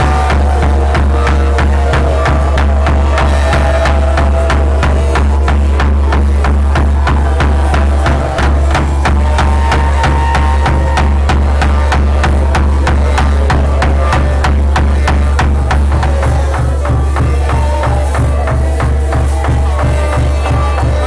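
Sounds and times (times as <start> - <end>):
wooden barrel drum beating: 0.0 - 21.0.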